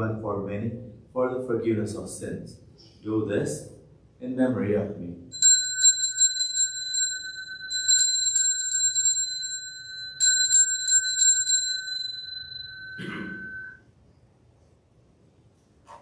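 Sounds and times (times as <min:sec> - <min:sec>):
altar bells jingling: 0:05.4 - 0:13.8.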